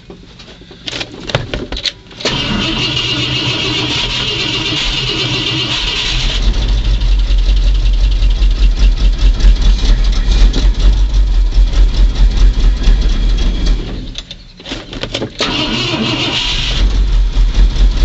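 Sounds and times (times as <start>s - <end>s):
starter cranking with whine: 2.1s - 18.0s
engine running unevenly: 2.2s - 18.0s.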